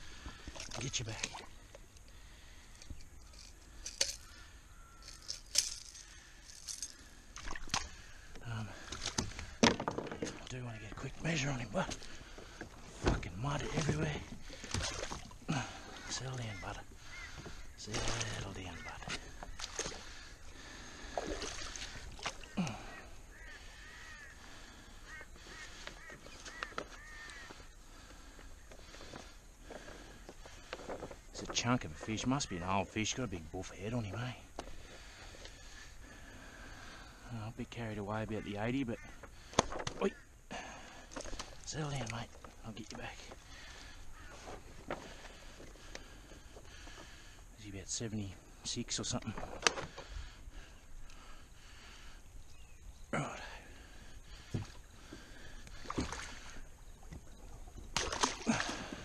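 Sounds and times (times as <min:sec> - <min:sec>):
bird calling: 0:00.0 - 0:59.0.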